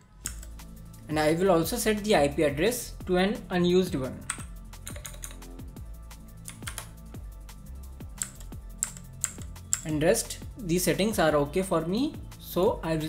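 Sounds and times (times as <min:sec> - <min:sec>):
electronic background music: 0:00.0 - 0:13.0.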